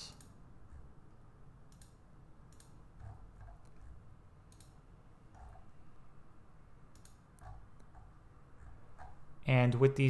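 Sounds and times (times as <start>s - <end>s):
computer mouse clicks: 0.1s - 0.9s, 1.6s - 5.7s, 6.8s - 9.2s.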